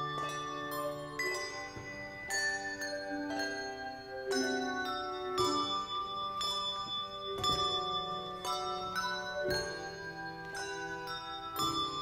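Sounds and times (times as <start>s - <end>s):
handbell choir ringing chords: 0.0s - 12.0s.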